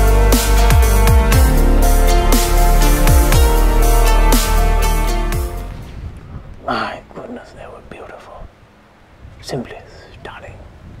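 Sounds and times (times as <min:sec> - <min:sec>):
man whispering: 0:06.6 - 0:08.6, 0:09.4 - 0:10.7.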